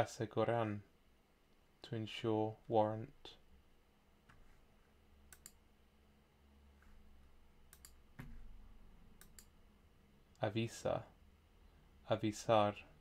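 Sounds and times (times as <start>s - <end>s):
computer mouse clicks: 5.3s - 5.6s, 7.7s - 8.5s, 9.2s - 9.6s.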